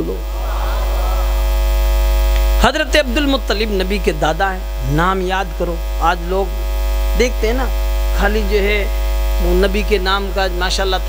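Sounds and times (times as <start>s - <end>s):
faint crowd voices responding: 0.0s - 1.4s
electrical mains hum: 0.0s - 11.0s.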